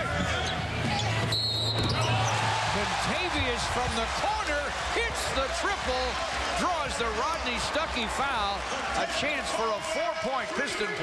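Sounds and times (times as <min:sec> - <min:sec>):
sneakers squeaking on court: 0:00.0 - 0:02.4.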